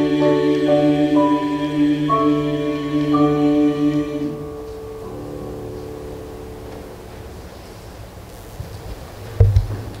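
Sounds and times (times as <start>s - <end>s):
accompaniment chord: 0.0s - 7.6s.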